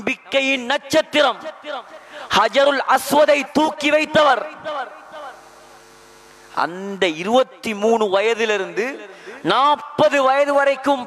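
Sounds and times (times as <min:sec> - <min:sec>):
man speaking: 0:00.0 - 0:05.5, 0:06.5 - 0:11.0
faint electrical mains hum: 0:00.0 - 0:11.0.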